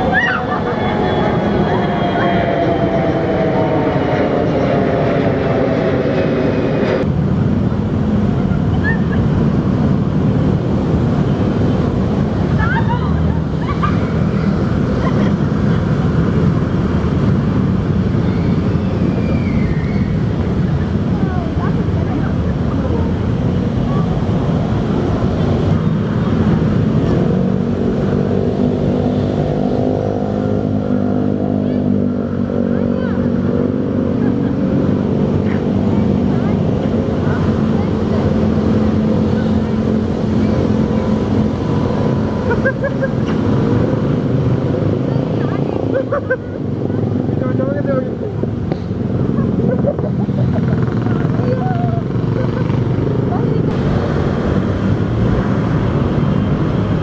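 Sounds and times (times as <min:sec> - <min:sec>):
road traffic noise: 0:00.0 - 0:57.0
vehicle engine passing: 0:00.0 - 0:57.0.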